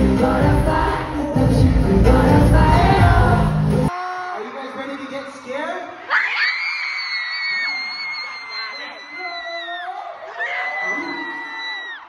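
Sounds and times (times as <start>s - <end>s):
crowd cheering: 2.9s - 12.0s
shrill scream: 6.0s - 12.0s.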